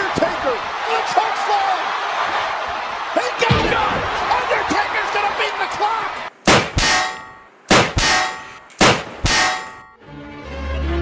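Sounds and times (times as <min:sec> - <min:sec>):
ringing metallic clangs: 0:06.7 - 0:10.0
music: 0:10.0 - 0:11.0.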